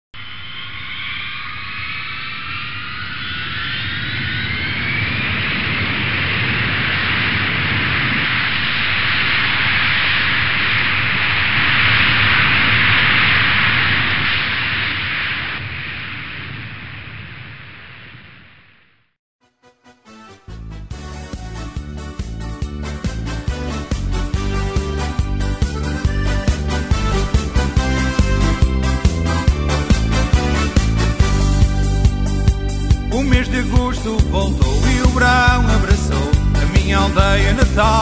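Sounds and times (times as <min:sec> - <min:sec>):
jet engines whining: 0:00.2 - 0:18.8
jet engine rushing noise: 0:00.2 - 0:19.0, 0:22.8 - 0:37.2.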